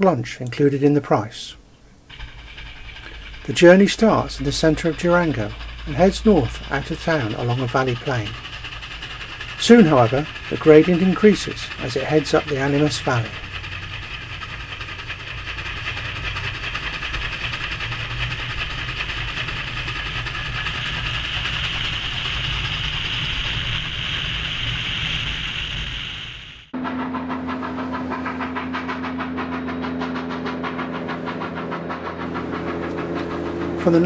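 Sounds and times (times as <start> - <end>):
moving train rushing: 0.0 - 34.0
low hum with fast beats: 1.6 - 34.0.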